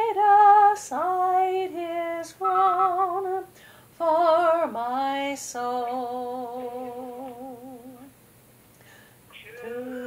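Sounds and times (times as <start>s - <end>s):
woman singing with vibrato: 0.0s - 8.2s, 9.5s - 10.0s.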